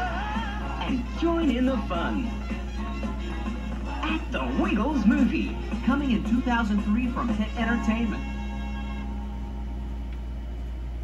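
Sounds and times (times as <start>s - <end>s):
tape playback hum: 0.0s - 11.0s.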